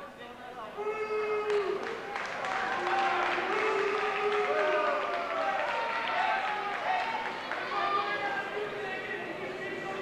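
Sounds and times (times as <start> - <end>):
spectators talking and calling out: 6.2 - 10.0.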